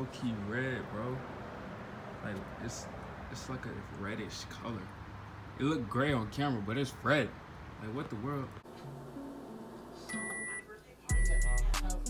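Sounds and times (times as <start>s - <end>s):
microwave oven beep: 9.2s - 11.8s.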